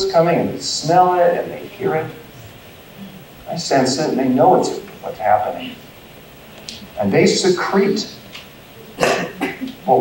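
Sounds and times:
person coughing: 9.0s - 9.7s.

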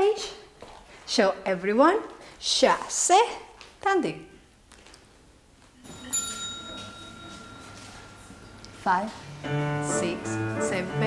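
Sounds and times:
bell-like chime ringing: 5.8s - 9.8s.

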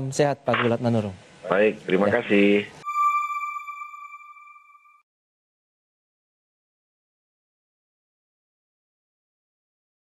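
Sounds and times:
electronic chime: 2.8s - 5.0s.

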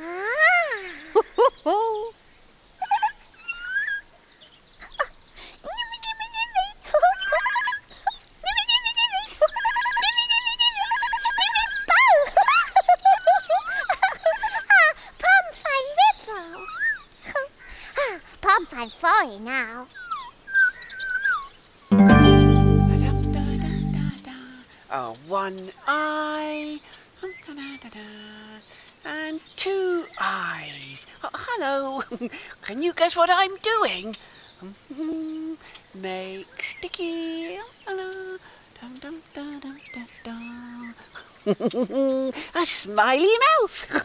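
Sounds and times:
loud held musical chord: 21.9s - 24.2s.

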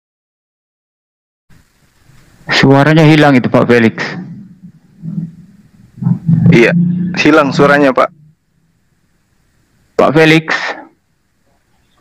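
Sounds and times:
man speaking: 2.5s - 4.3s, 6.4s - 8.2s
faint low sound: 3.6s - 9.0s.

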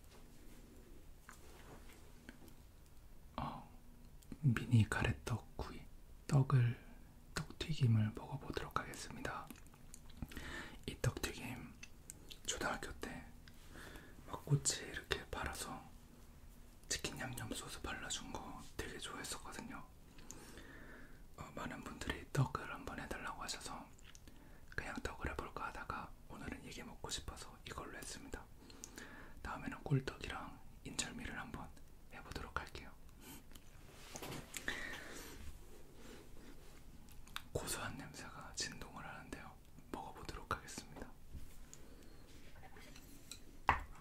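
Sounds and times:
man whispering: 3.3s - 9.7s, 10.8s - 13.4s, 14.2s - 16.0s, 16.8s - 20.0s, 21.3s - 28.6s, 29.4s - 33.4s, 36.5s - 41.3s.

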